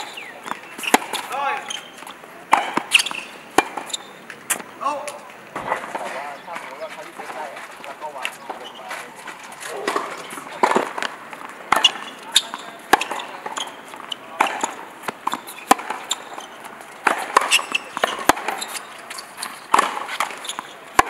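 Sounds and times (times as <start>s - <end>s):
tennis ball struck by rackets: 0.0s - 6.2s, 9.6s - 21.0s
ball bouncing on hard court: 9.8s - 21.0s.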